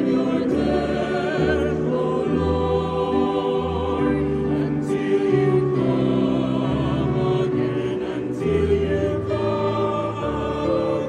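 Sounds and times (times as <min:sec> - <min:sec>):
mixed choir singing in harmony: 0:00.0 - 0:11.0.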